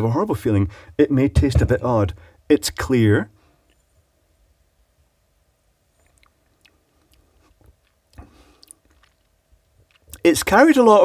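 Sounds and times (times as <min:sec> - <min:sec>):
wet mouth clicks and lip smacks: 0:06.0 - 0:10.2.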